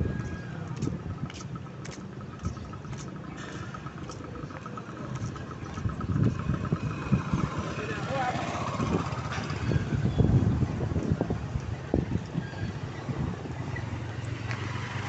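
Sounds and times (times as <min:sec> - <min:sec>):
vehicle engine running: 0:00.0 - 0:11.2
wind buffeting microphone: 0:00.0 - 0:15.0.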